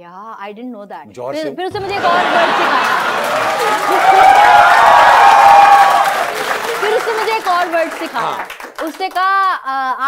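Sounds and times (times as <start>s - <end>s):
audience cheering and applauding: 1.8s - 9.2s
long held whoop: 3.3s - 6.6s.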